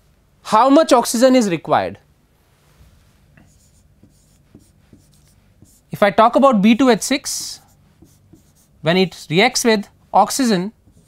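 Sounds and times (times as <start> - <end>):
marker scratching on board: 3.4 - 6.0, 6.8 - 9.6, 10.4 - 11.0.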